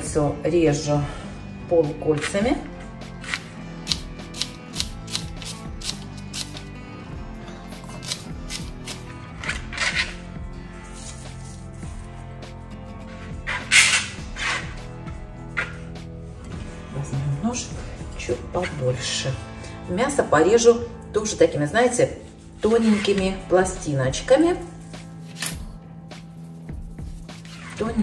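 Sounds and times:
background music: 0:00.0 - 0:28.0
onion handling noises: 0:10.9 - 0:11.8.

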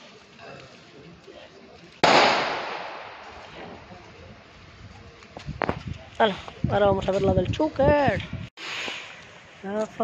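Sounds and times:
firecracker bang: 0:02.0 - 0:03.8.

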